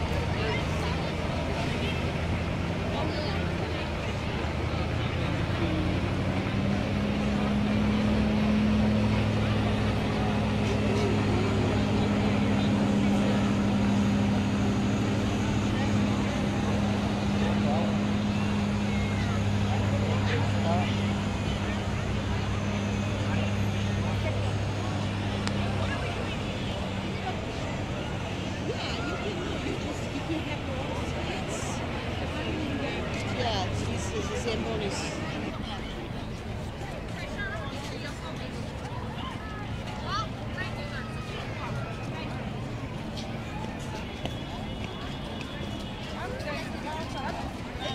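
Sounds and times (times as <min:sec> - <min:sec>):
crowd chatter: 0:00.0 - 0:47.9
ice resurfacer engine drone: 0:00.0 - 0:47.9.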